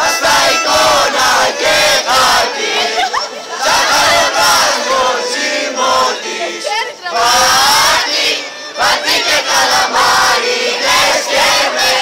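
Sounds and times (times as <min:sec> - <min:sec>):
teenagers singing loudly: 0:00.0 - 0:12.0.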